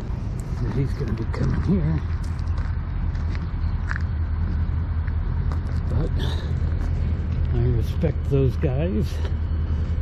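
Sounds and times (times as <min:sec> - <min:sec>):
faint footsteps: 0:00.0 - 0:07.6
diesel locomotive engine rumble: 0:00.0 - 0:10.0.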